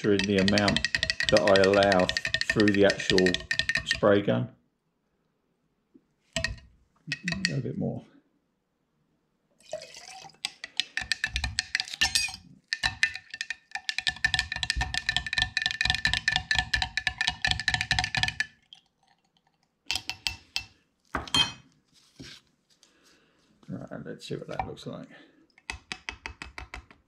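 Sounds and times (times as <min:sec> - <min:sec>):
metal spoon clinking in glass jar: 0:00.0 - 0:04.0, 0:10.1 - 0:14.3, 0:19.9 - 0:20.7.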